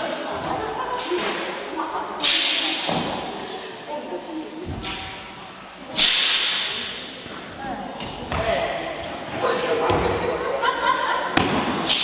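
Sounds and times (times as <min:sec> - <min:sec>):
hiss: 0:02.2 - 0:02.9, 0:05.9 - 0:07.1
sharp crack: 0:02.2 - 0:02.9, 0:05.9 - 0:07.2.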